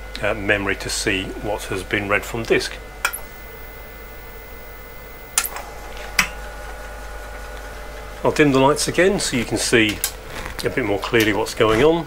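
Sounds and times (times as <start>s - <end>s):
electrical hum: 0.0s - 12.0s
faint high whine: 0.5s - 6.9s
sharp clicks: 3.0s - 5.6s.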